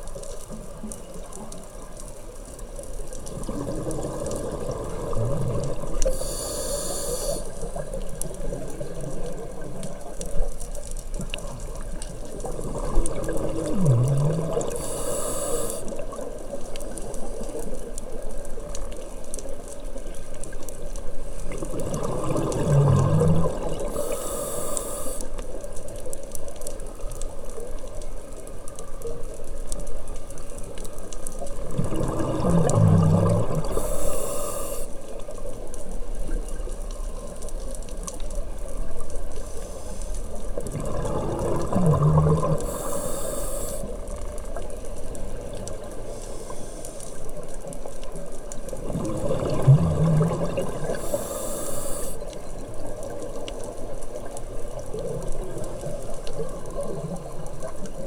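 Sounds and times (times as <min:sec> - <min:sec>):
steady underwater hiss: 0:00.0 - 0:58.0
exhaled bubbles burbling underwater: 0:03.0 - 0:18.7, 0:21.1 - 0:25.2, 0:31.4 - 0:39.5, 0:40.3 - 0:58.0
regulator hissing on inhale: 0:05.9 - 0:07.8, 0:14.0 - 0:16.0, 0:22.8 - 0:25.4, 0:33.1 - 0:35.0, 0:39.4 - 0:40.4, 0:42.0 - 0:44.0, 0:46.0 - 0:47.2, 0:50.8 - 0:52.3.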